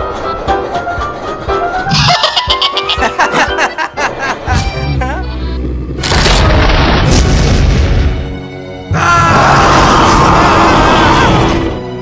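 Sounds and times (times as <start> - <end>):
dramatic music: 0.0 - 12.0
deep booming rumble: 5.0 - 8.4
loud noisy blast: 5.8 - 8.4.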